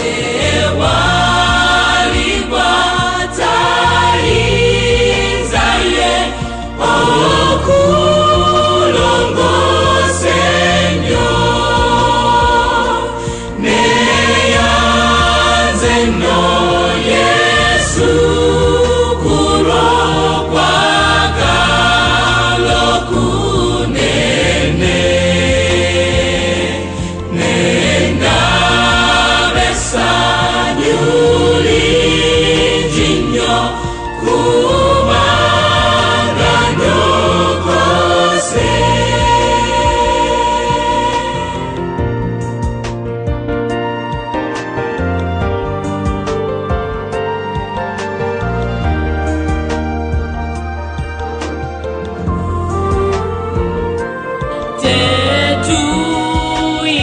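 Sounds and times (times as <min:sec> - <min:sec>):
choir singing gospel song: 0:00.0 - 0:50.4, 0:51.0 - 0:57.0.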